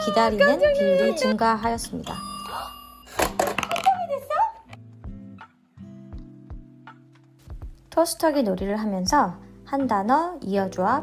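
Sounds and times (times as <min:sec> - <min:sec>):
plastic toy bread popping up: 0:03.1 - 0:04.0.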